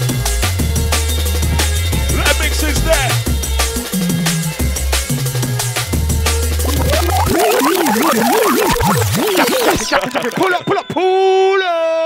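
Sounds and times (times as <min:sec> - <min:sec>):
dj scratching: 0:06.7 - 0:10.4.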